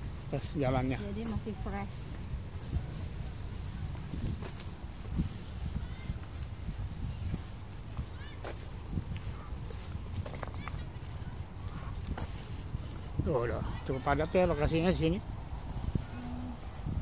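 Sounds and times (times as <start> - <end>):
footsteps on brick path: 0.0 - 17.0.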